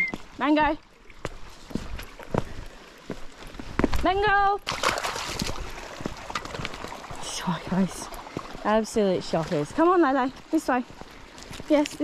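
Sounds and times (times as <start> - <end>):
footsteps on rocks and dry grass: 1.2 - 4.4, 5.4 - 12.0.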